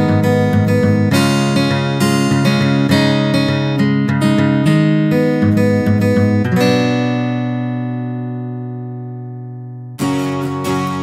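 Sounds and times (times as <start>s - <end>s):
acoustic guitar chord ringing: 0.0s - 11.0s.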